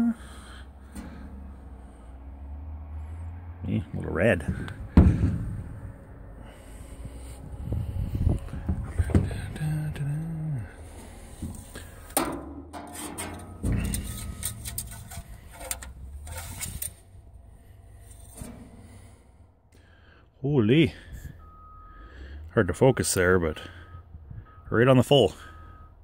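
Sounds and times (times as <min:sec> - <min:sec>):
person humming: 0:00.0 - 0:00.4
knocks and scrapes on sheet metal: 0:11.3 - 0:17.0, 0:18.0 - 0:19.1.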